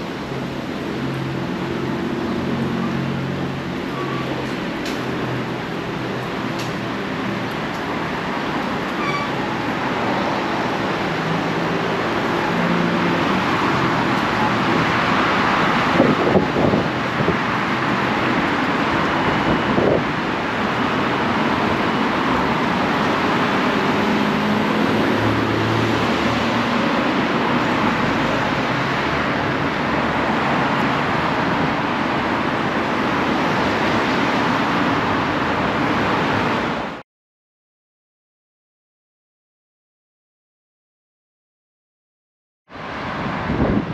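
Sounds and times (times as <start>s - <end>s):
road traffic: 0.0s - 37.0s, 42.7s - 43.9s.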